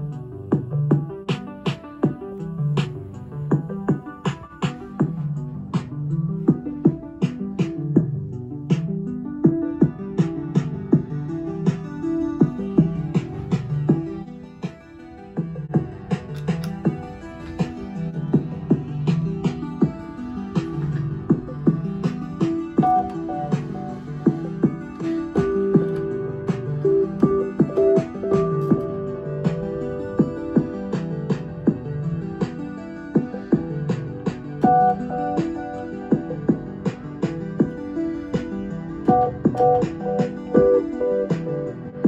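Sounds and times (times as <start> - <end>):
drum machine beat: 0.5 - 14.8, 15.4 - 32.6, 33.2 - 41.7
sustained synth chords: 8.0 - 42.0.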